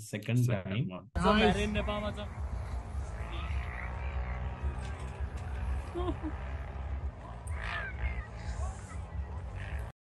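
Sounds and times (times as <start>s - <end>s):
people's gliding cries: 2.4s - 9.9s.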